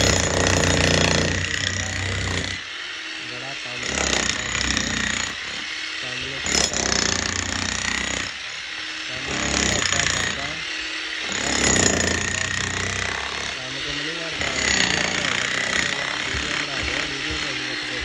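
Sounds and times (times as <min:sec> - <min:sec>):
demolition hammer breaking concrete: 0:00.0 - 0:02.6, 0:03.8 - 0:05.6, 0:06.4 - 0:08.4, 0:09.3 - 0:10.6, 0:11.3 - 0:13.7, 0:14.4 - 0:17.6.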